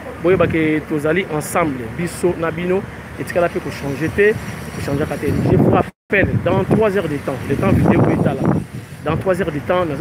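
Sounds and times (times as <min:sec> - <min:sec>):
man talking: 0:00.0 - 0:10.0
outdoor background noise: 0:00.0 - 0:10.0.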